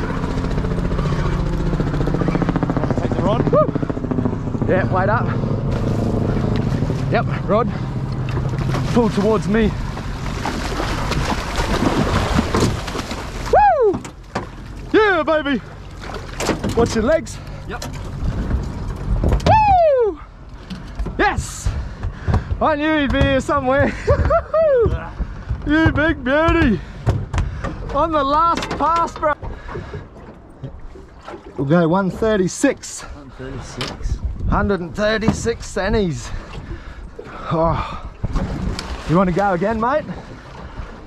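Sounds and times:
outboard engine idling: 0.0s - 19.6s, 20.2s - 32.4s, 34.9s - 41.0s
man whooping: 3.5s - 3.8s, 13.5s - 14.0s, 19.4s - 20.3s, 24.3s - 25.1s
fish thumping on boat deck: 9.8s - 14.7s, 20.6s - 31.4s.

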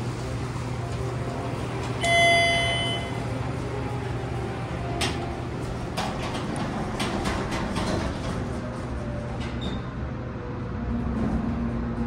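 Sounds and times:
elevator chime ding: 2.0s - 3.3s.

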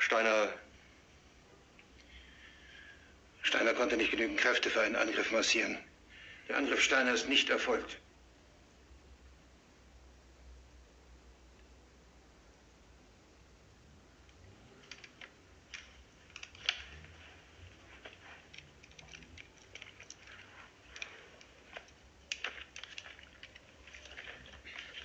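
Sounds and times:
low room hum: 0.0s - 25.0s
rustles and clicks of handling: 14.2s - 25.0s.

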